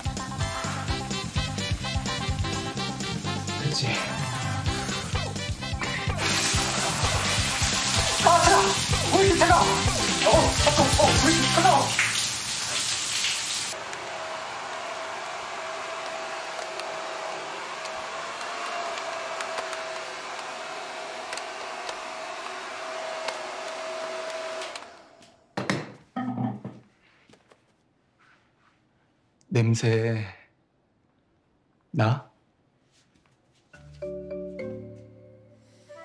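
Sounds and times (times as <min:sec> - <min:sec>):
background music: 0:00.0 - 0:11.9, 0:33.8 - 0:36.0
hair dryer blowing with whine: 0:05.8 - 0:12.0, 0:13.7 - 0:25.3.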